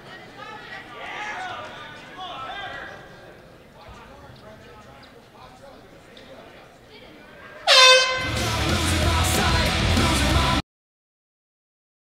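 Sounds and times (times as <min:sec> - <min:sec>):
air horn blast: 0:07.7 - 0:08.5
loud rock music: 0:07.7 - 0:10.6.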